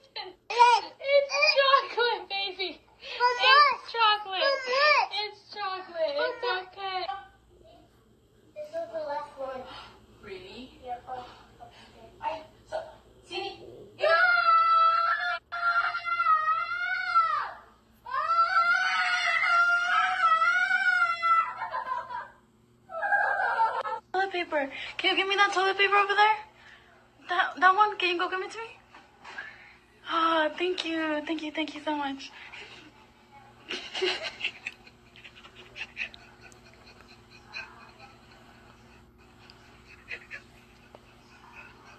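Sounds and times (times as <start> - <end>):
girl wailing: 14.0 - 21.7.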